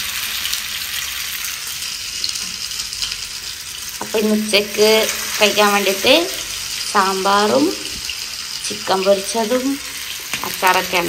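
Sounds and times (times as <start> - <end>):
chicken frying in oil: 0.0 - 11.0.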